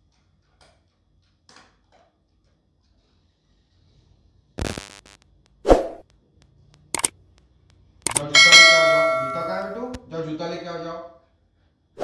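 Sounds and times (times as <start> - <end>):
quick mouse clicks: 6.8 - 7.1
bright bell ding: 8.1 - 10.0.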